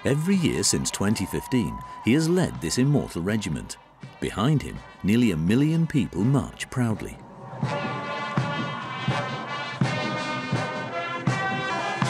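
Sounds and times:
brass band music: 0:04.2 - 0:12.0.

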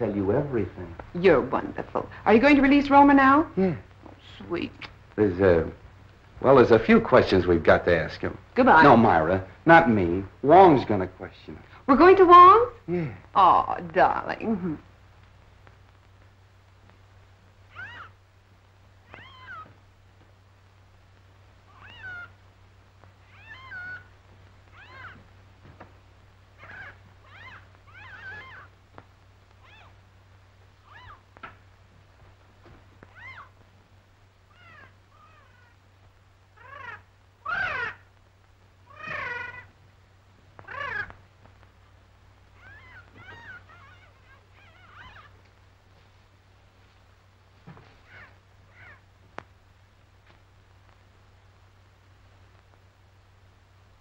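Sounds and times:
cat meowing: 0:17.7 - 0:18.2, 0:19.0 - 0:19.8, 0:21.7 - 0:22.4, 0:23.2 - 0:25.3, 0:26.6 - 0:28.8, 0:29.6 - 0:30.0, 0:30.8 - 0:31.4, 0:33.0 - 0:33.6, 0:34.5 - 0:35.8, 0:36.6 - 0:38.1, 0:38.9 - 0:39.7, 0:40.6 - 0:41.2, 0:42.6 - 0:45.4, 0:48.0 - 0:49.1.

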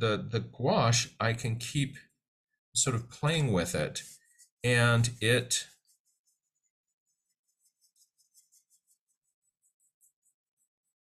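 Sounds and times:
paintbrush strokes on paper: 0:04.0 - 0:11.0.

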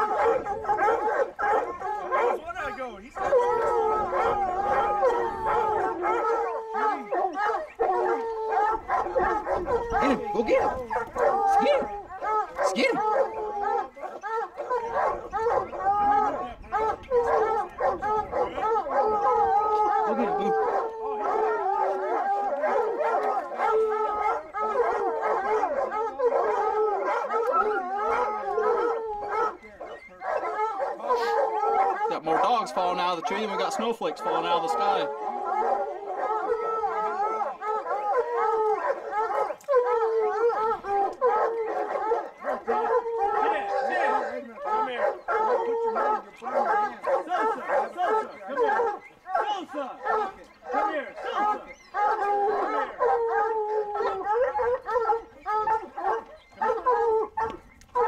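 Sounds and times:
hounds baying and howling: 0:00.0 - 0:58.0.

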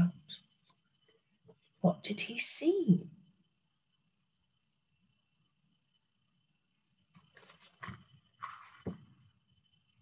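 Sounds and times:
soft paper rustles: 0:07.1 - 0:09.0.

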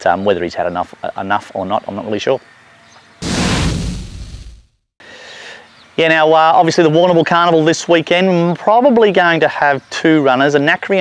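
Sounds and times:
noisy transition sound effect: 0:03.2 - 0:04.7.

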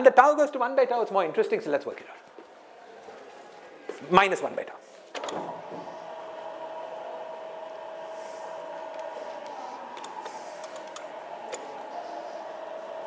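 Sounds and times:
sliding panel mechanism hum: 0:05.1 - 0:13.0.

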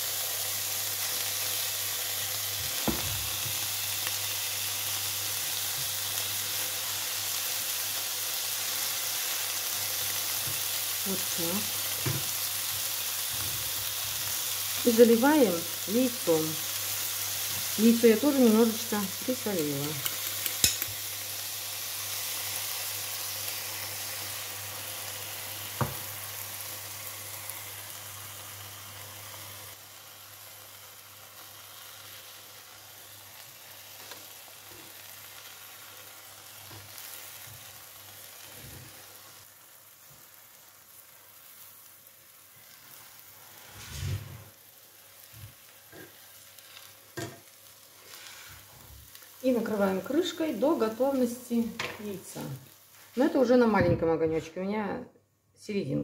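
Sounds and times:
eggs sizzling in frying pan: 0:00.0 - 0:53.8.

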